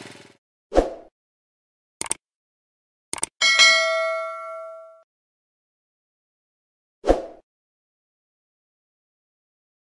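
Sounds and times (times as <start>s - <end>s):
bell ding: 3.4s - 5.0s.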